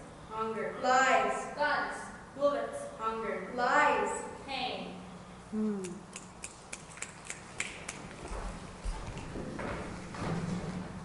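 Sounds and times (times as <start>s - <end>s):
person vocal sound: 5.5s - 6.2s.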